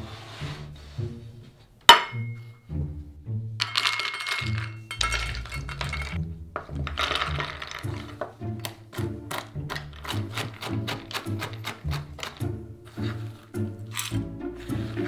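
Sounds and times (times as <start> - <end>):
nuts rattling onto wooden board: 3.6 - 12.5, 13.9 - 14.2
nuts rattling into metal cup: 3.6 - 14.2
background music with bass line: 5.3 - 15.0.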